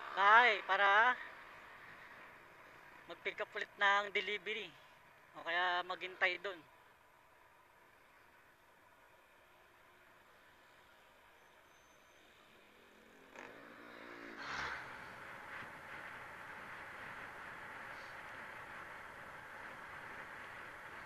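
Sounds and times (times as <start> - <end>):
motorcycle riding: 0.0 - 5.5, 12.0 - 21.0
wind and road noise: 0.0 - 21.0
truck engine passing: 13.0 - 21.0.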